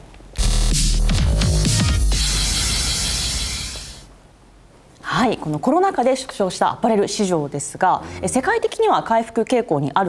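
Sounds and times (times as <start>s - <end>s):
sound effect hit: 1.2s - 4.1s
hiss-like noise: 1.6s - 4.2s.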